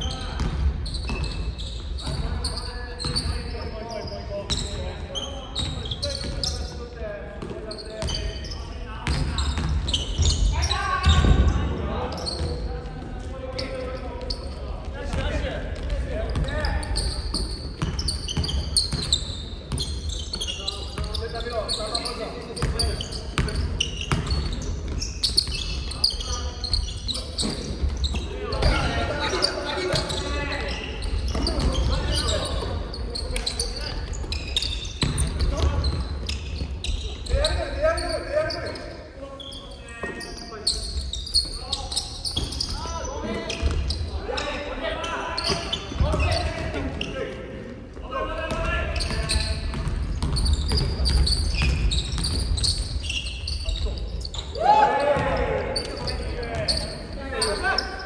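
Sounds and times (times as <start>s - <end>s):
sneakers squeaking: 0.0s - 58.0s
basketball bouncing on wooden court: 0.3s - 2.3s, 3.0s - 3.3s, 9.0s - 11.6s, 15.1s - 20.4s, 22.6s - 25.8s, 33.3s - 37.6s, 45.4s - 47.0s, 48.5s - 53.9s
players calling out: 48.0s - 58.0s.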